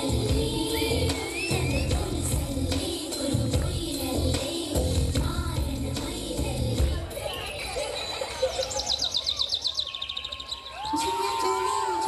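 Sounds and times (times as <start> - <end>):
birdsong trill: 8.0 - 10.9.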